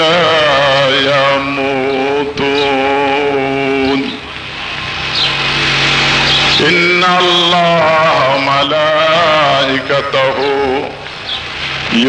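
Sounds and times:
man chanting: 0.0s - 4.3s, 6.5s - 11.1s.

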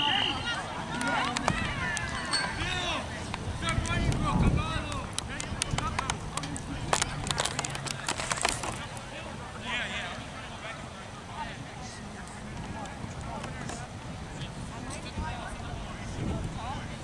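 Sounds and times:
distant shouting voices: 0.0s - 7.2s.

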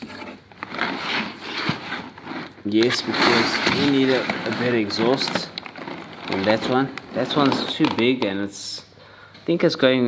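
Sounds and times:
cardboard rubbing: 0.0s - 7.4s
packing paper rustling: 0.4s - 8.0s.

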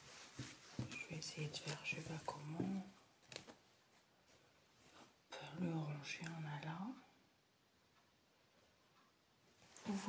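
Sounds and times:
faint rustling of canvas: 0.0s - 5.4s, 9.5s - 10.0s.

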